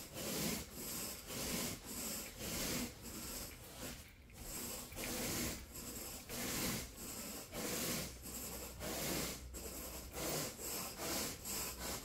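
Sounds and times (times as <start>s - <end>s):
rake scratching through carpet: 0.0s - 12.0s.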